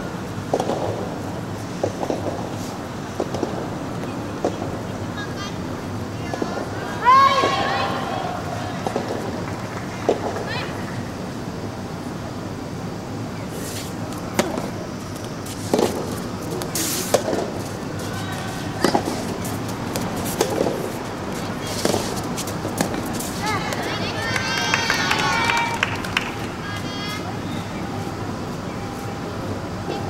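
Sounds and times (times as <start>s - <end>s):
rackets hitting soft tennis ball: 0.4s - 4.7s, 8.7s - 10.5s, 13.5s - 24.1s
high chirping calls: 27.0s - 29.2s.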